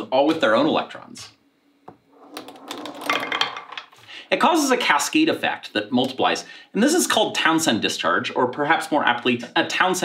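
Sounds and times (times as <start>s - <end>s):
small pieces rattling against pegs: 2.4s - 4.0s.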